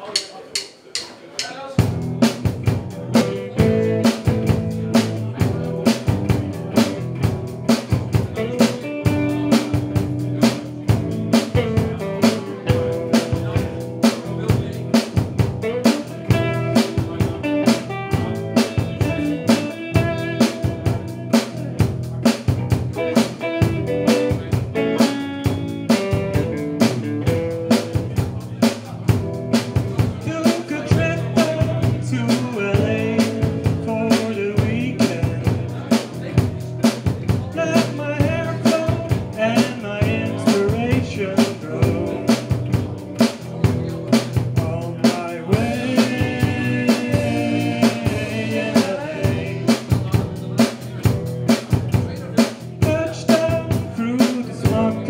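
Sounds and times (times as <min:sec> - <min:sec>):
drum kit kick and snare hits: 0:01.8 - 0:24.8
electric guitars: 0:01.8 - 0:55.0.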